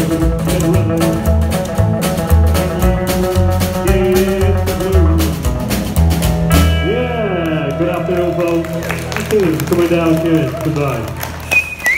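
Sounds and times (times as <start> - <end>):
slapped upright bass: 0.0 - 11.9.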